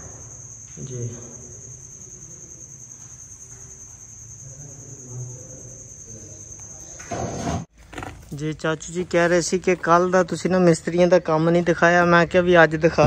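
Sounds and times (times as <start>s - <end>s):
insect trilling: 0.0s - 7.2s.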